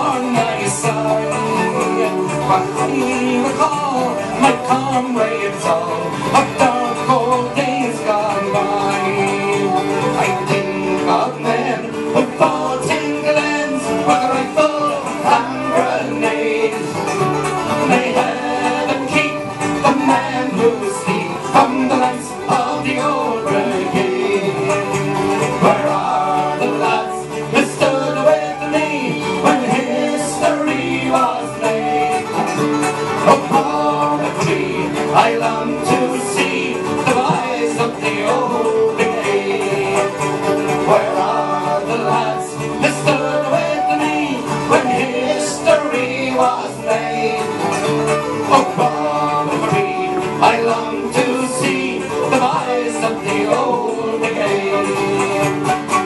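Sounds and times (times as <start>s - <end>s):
banjo: 0.0s - 56.0s
bass guitar: 0.0s - 56.0s
strummed acoustic guitars: 0.0s - 56.0s
flute melody: 13.1s - 34.1s, 38.6s - 52.6s.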